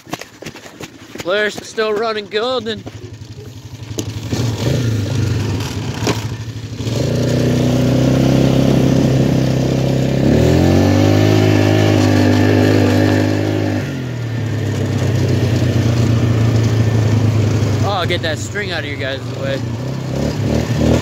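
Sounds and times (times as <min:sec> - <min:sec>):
quad bike engine revving: 0:01.3 - 0:21.0.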